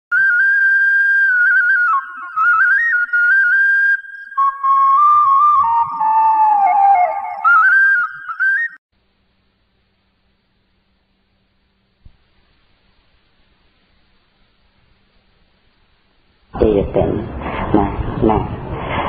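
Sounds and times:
flute-like solo melody: 0.1 - 8.8.

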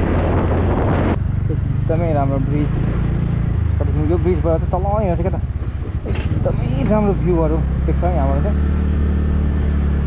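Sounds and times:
motorcycle engine cruising: 0.0 - 10.0
road and wind noise: 0.0 - 10.0.

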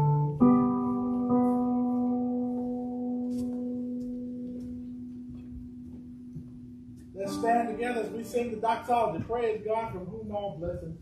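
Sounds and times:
sustained keyboard chord: 0.0 - 9.8.

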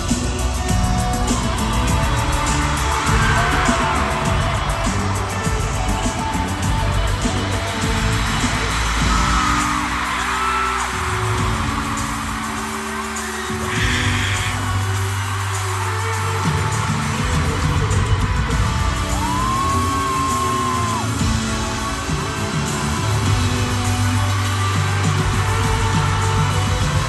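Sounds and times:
crowd cheering and screaming: 0.0 - 27.0
pop band playing held chords: 0.0 - 27.0.

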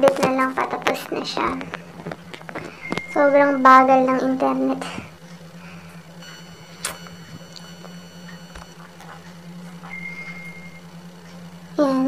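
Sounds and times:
low hum: 0.0 - 12.0
thin high tone: 6.2 - 9.1.

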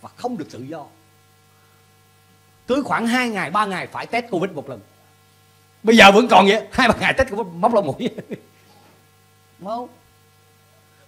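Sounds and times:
man speaking: 0.0 - 1.0, 2.7 - 5.0, 5.8 - 8.4, 9.6 - 10.1
faint electrical mains hum: 0.0 - 11.0.

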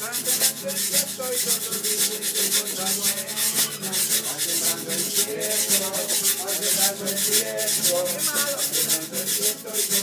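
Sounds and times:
guiro scraped rhythmically: 0.0 - 10.0.

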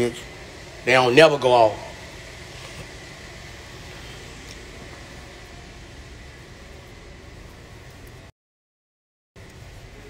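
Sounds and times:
room noise hiss and hum: 0.0 - 8.3, 9.4 - 10.0.

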